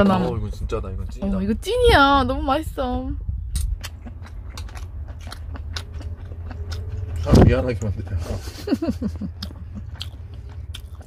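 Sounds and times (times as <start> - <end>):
low steady hum: 0.0 - 11.0
slurping and chewing: 3.6 - 8.1, 9.4 - 11.0.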